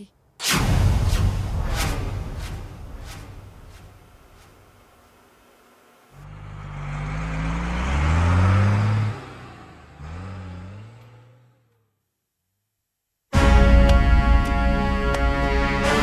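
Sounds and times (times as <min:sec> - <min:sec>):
vehicle engine accelerating: 0:06.1 - 0:12.0.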